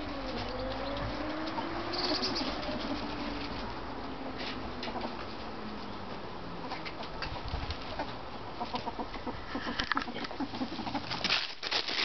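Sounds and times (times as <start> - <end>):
rustling: 9.6 - 12.0.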